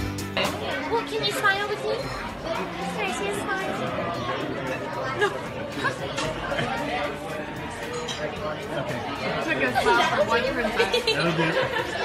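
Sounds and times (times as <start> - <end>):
murmur of restaurant chatter: 0.0 - 12.0.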